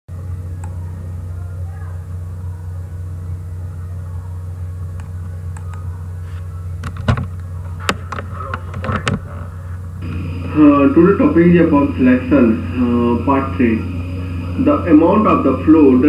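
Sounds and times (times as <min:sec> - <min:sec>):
steady low hum: 0:00.1 - 0:16.0.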